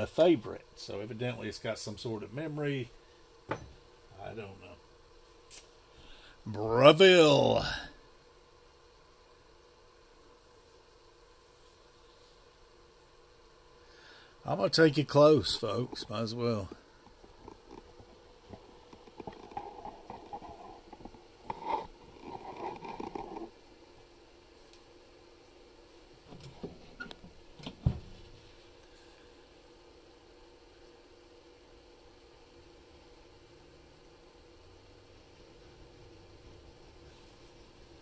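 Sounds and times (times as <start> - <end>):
air fryer oven humming: 23.5 - 38.0.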